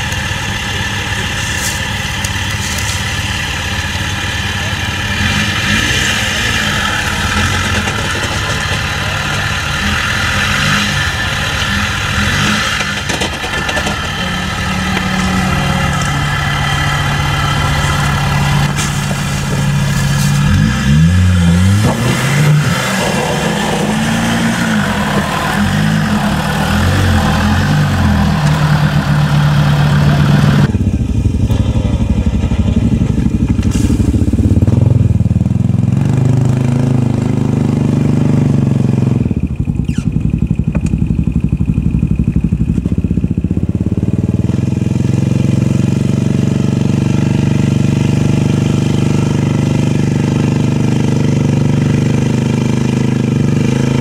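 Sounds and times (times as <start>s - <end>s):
off-road vehicle engine revving: 0.0s - 54.0s
quad bike engines revving: 0.0s - 54.0s.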